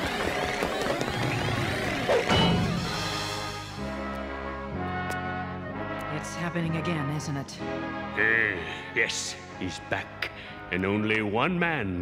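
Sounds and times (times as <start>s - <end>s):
dramatic orchestral cartoon music: 1.1s - 12.0s.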